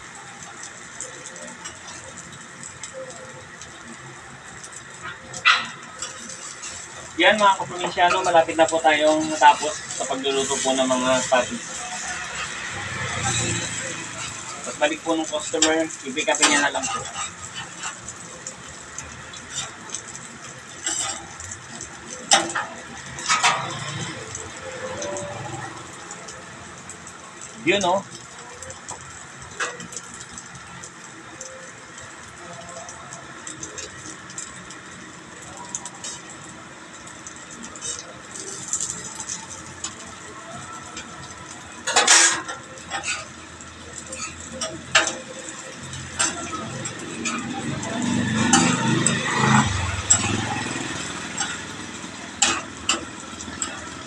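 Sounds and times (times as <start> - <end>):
burgers sizzling on griddle: 0.0 - 54.0
metal spatula scraping griddle: 3.8 - 26.6, 32.9 - 54.0.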